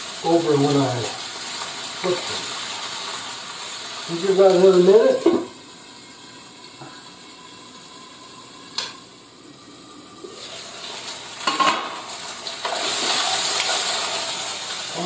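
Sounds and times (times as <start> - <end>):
chicken sizzling in oil: 0.0 - 15.0.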